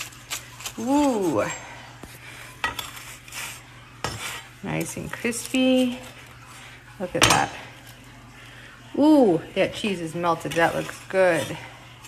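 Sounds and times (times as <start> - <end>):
knife crunching through crispy tortilla: 0.0 - 1.6, 2.8 - 6.5.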